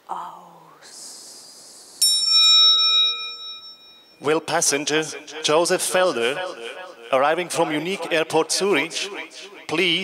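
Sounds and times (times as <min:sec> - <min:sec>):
bell-like chime: 0:02.0 - 0:04.5.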